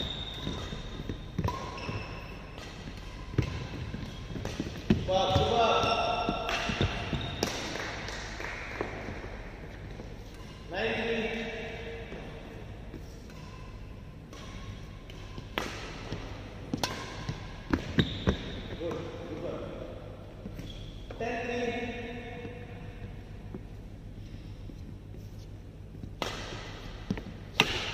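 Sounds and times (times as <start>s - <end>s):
rackets hitting shuttlecock: 0.0s - 12.4s, 13.2s - 19.0s, 26.0s - 27.9s.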